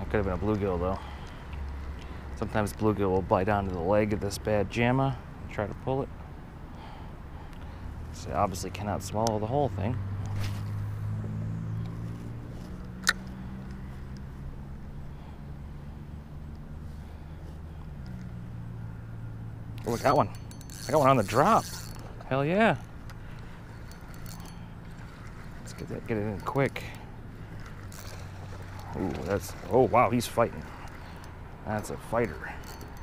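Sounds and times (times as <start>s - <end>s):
faint reel ticks: 0.0s - 4.4s, 19.7s - 33.0s
engine humming steadily: 0.0s - 33.0s
man talking: 25.7s - 27.0s, 28.9s - 30.7s, 31.6s - 32.6s.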